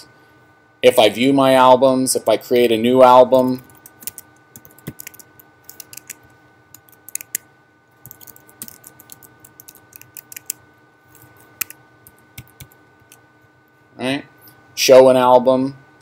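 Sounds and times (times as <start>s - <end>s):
keyboard typing clicks: 3.6s - 6.2s, 6.8s - 7.4s, 8.0s - 10.6s, 11.6s - 13.2s.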